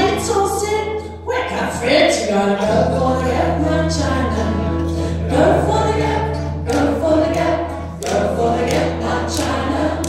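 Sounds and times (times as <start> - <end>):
woman singing: 0.0 - 10.0.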